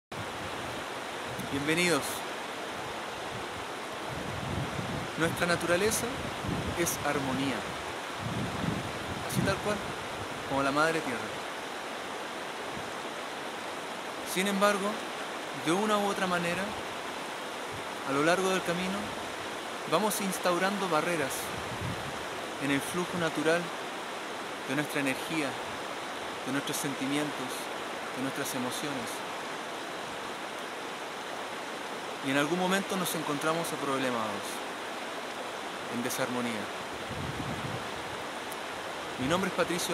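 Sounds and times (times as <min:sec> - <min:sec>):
stream running over rocks: 0:00.1 - 0:39.9.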